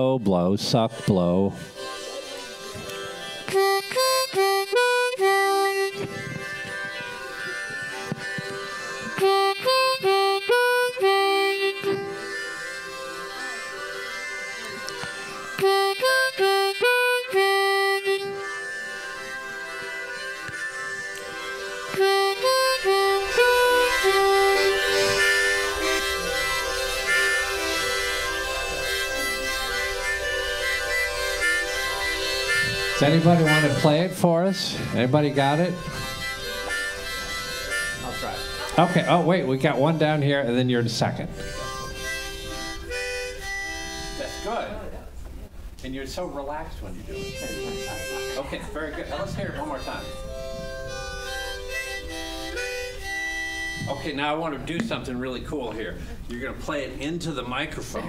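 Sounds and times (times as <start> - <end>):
harmonica playing a lick: 0.0 - 45.0, 46.8 - 58.0
many harmonicas playing together: 0.0 - 45.2, 46.1 - 58.0.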